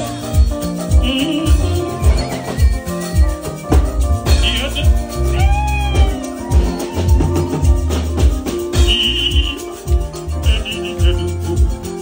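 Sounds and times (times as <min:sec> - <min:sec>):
bass and kick drum beat: 0:00.0 - 0:12.0
live band music: 0:00.0 - 0:12.0
high bending note: 0:04.2 - 0:06.4, 0:08.7 - 0:12.0.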